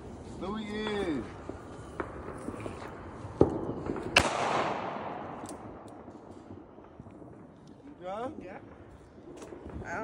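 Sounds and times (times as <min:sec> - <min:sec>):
gunshots with echo: 0:03.9 - 0:05.8.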